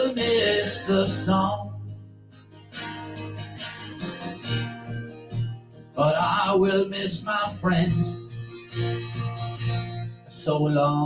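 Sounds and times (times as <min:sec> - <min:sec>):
person singing folk song: 0:00.0 - 0:02.1, 0:05.9 - 0:09.1, 0:10.2 - 0:11.0
acoustic guitar strumming: 0:00.0 - 0:11.0.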